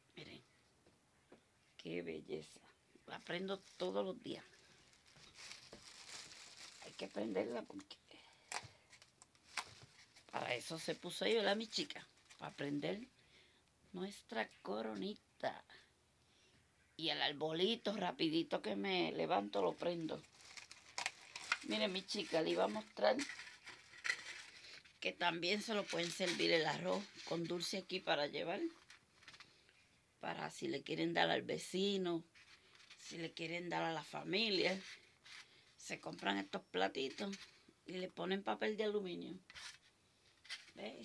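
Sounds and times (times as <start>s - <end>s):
person speaking: 1.8s - 4.7s, 5.3s - 8.8s, 10.2s - 13.1s, 13.9s - 15.9s, 17.0s - 20.4s, 21.0s - 23.5s, 24.2s - 28.8s, 33.0s - 35.0s, 35.8s - 39.5s, 40.7s - 41.0s
faint soft rustling: 2.4s - 15.2s, 19.5s - 30.1s, 31.7s - 37.8s, 39.3s - 41.0s.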